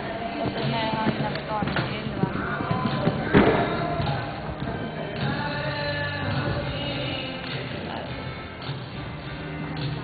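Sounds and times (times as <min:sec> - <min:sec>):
horse hooves cantering on sand: 0:00.0 - 0:05.4
voices: 0:00.0 - 0:05.7
background music: 0:00.0 - 0:10.0.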